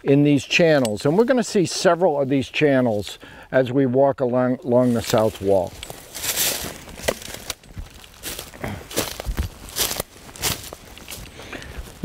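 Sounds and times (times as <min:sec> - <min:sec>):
footsteps crunching dry leaves: 0:04.6 - 0:12.0.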